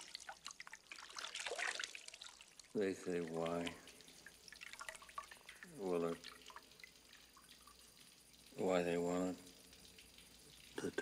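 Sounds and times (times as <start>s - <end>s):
water dripping: 0.0s - 11.0s.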